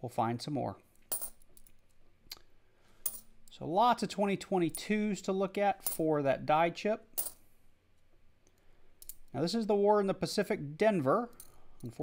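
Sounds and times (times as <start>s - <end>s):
coins clinking: 1.1s - 1.8s, 3.0s - 3.3s, 5.8s - 6.0s, 7.2s - 7.4s.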